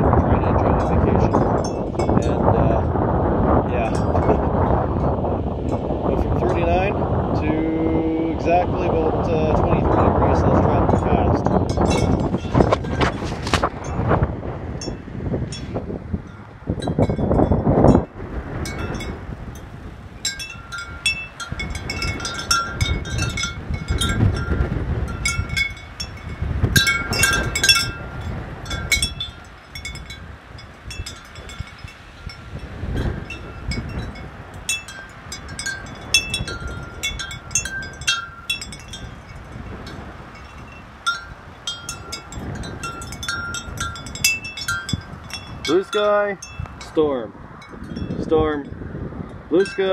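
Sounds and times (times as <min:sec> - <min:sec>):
wind chimes ringing: 0:00.0 - 0:02.9, 0:03.7 - 0:05.8, 0:09.7 - 0:14.1, 0:14.8 - 0:48.8, 0:49.5 - 0:49.9
wind buffeting microphone: 0:00.0 - 0:49.9.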